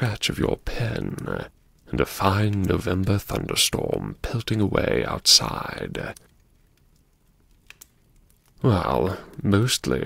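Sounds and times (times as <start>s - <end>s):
person speaking: 0.0s - 6.3s, 8.6s - 10.0s.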